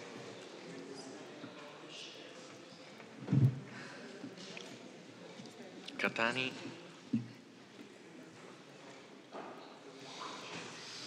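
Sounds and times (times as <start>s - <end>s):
soft knock or shuffle: 3.2s - 3.7s.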